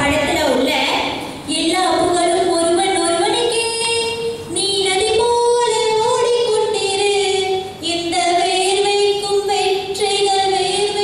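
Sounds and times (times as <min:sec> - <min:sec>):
woman singing unaccompanied: 0:01.5 - 0:11.0.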